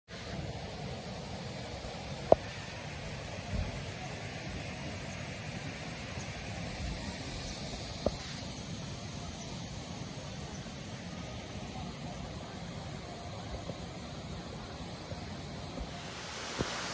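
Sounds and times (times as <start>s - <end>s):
roadside rushing noise: 15.4s - 16.9s.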